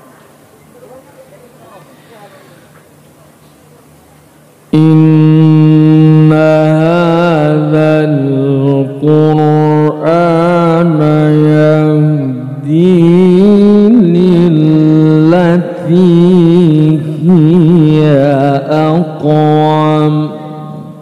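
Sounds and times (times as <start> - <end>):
man reciting melodically: 4.7 - 21.0.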